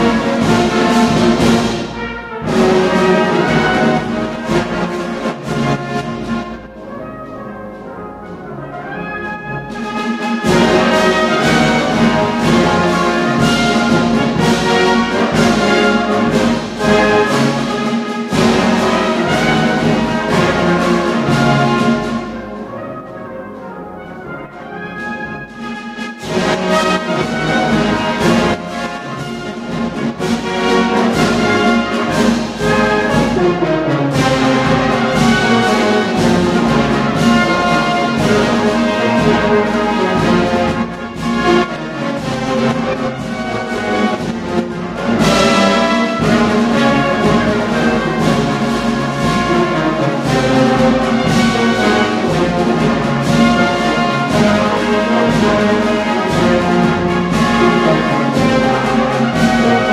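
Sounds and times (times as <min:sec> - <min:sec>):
brass band playing a march: 0:00.0 - 0:59.9.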